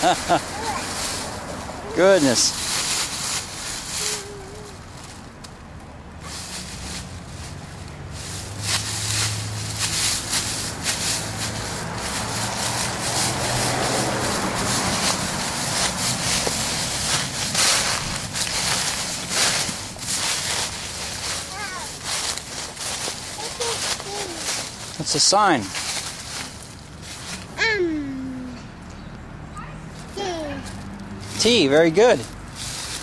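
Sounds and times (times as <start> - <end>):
footsteps crunching dry leaves: 0.0 - 5.4, 6.1 - 27.6, 29.9 - 33.0.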